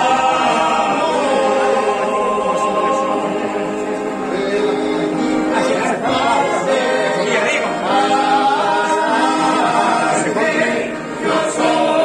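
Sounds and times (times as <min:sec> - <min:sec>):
men singing in harmony: 0:00.0 - 0:12.0.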